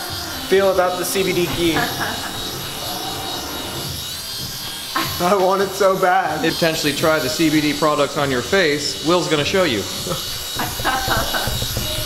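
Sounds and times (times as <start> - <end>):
toy drone rotors buzzing: 0.0 - 12.0.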